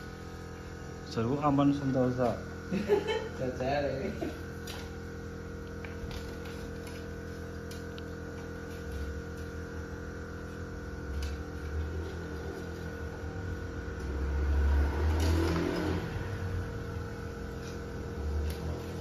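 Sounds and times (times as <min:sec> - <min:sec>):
steady mechanical hum: 0:00.0 - 0:19.0.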